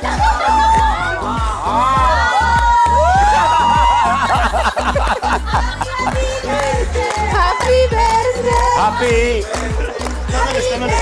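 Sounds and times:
music with driving beat: 0:00.0 - 0:11.0
people shouting and cheering: 0:00.0 - 0:11.0.

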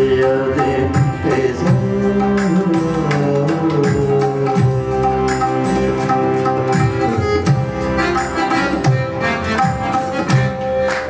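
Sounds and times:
man singing long held notes: 0:00.0 - 0:05.3
harmonium drone: 0:03.8 - 0:11.0.

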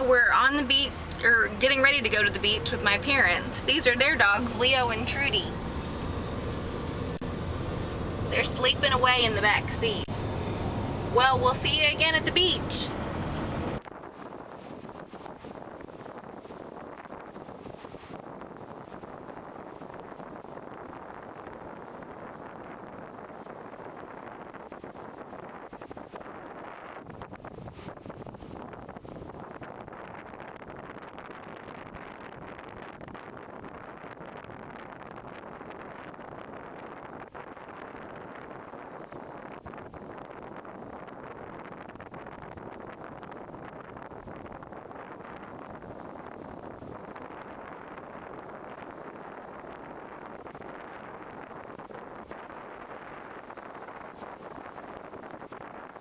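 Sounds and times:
wind blowing across microphone: 0:00.0 - 0:56.0.

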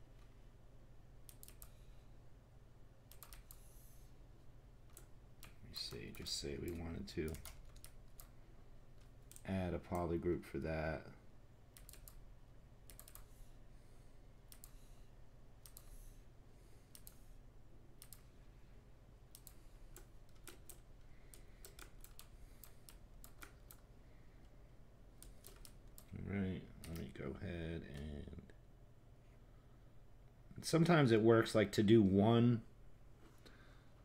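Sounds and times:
low steady hum: 0:00.0 - 0:34.0
keyboard and mouse clicks: 0:01.2 - 0:01.8, 0:03.1 - 0:03.7, 0:04.8 - 0:08.4, 0:09.0 - 0:10.1, 0:11.8 - 0:12.2, 0:12.9 - 0:13.4, 0:14.5 - 0:14.8, 0:15.6 - 0:16.1, 0:16.9 - 0:17.2, 0:18.0 - 0:18.3, 0:19.3 - 0:23.9, 0:25.2 - 0:26.2, 0:26.8 - 0:27.1
person speaking: 0:05.4 - 0:07.6, 0:09.4 - 0:11.2, 0:26.0 - 0:28.6, 0:30.5 - 0:32.7.

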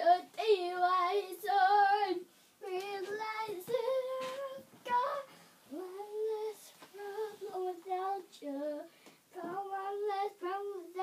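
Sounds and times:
girl singing unaccompanied: 0:00.0 - 0:11.0.

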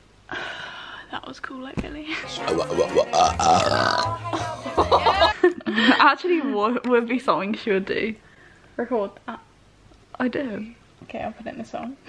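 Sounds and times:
person burping: 0:02.5 - 0:04.4.

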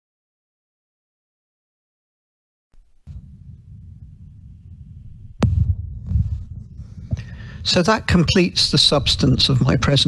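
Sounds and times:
open microphone rumbling hum: 0:02.8 - 0:10.0.

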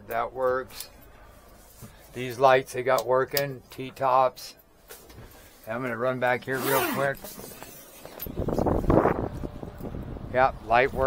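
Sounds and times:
wind buffeting microphone: 0:08.3 - 0:11.0.

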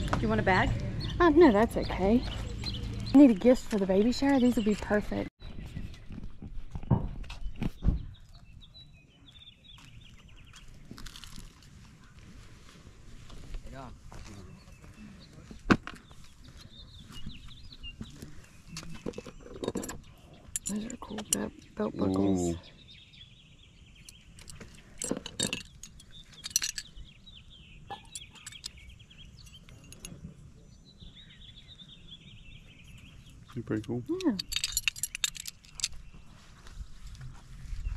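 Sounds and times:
metal buckles clinking: 0:18.7 - 0:21.7, 0:24.0 - 0:30.4, 0:32.8 - 0:36.3.

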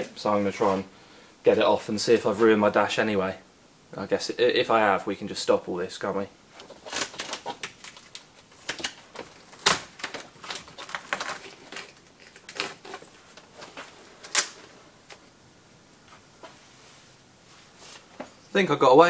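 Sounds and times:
mould crackling as peeled off: 0:06.5 - 0:15.4
faint handling sounds: 0:06.5 - 0:18.8.

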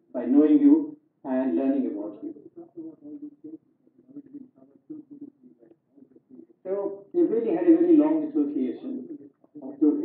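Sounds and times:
man talking over video call: 0:00.0 - 0:03.5, 0:06.5 - 0:10.0.

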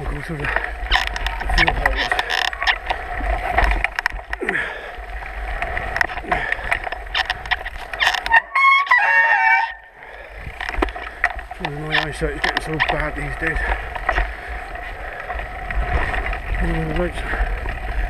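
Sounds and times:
mountain bike rattling and knocking: 0:00.0 - 0:18.0
high wavering squeal: 0:08.0 - 0:09.9.

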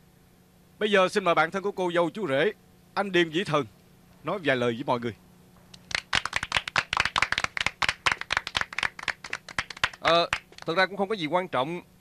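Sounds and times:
people clapping: 0:05.7 - 0:10.8.

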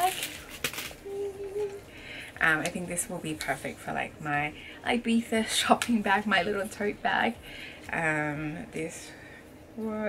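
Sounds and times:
packing paper rustling: 0:00.0 - 0:01.7
woman humming: 0:01.0 - 0:01.9.

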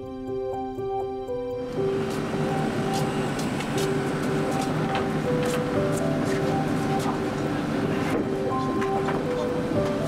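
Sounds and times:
soft background music: 0:00.0 - 0:10.0
excavator diesel engine running: 0:01.7 - 0:10.0.

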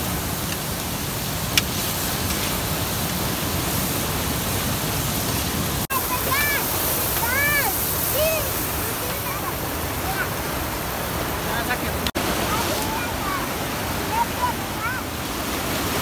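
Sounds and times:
river rushing: 0:00.0 - 0:16.0.

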